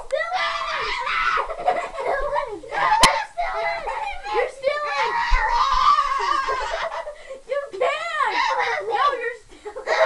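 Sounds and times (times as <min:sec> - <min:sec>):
children screaming and shouting: 0:00.1 - 0:07.1
children giggling: 0:00.8 - 0:07.4, 0:08.3 - 0:10.0.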